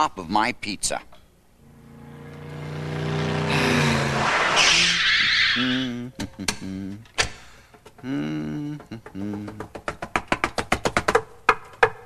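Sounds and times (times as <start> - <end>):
car engine speeding up: 1.6 - 5.8
tyres screeching: 1.6 - 5.9.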